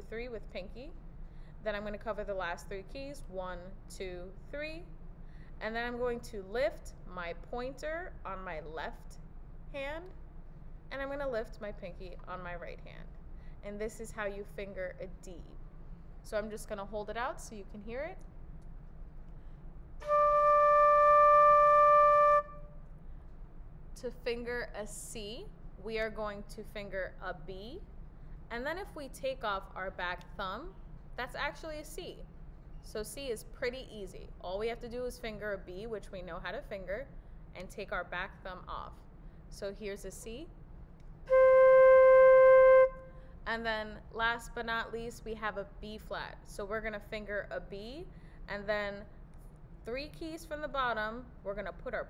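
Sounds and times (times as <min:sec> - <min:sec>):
flute held note: 0:20.0 - 0:22.7, 0:41.3 - 0:43.3.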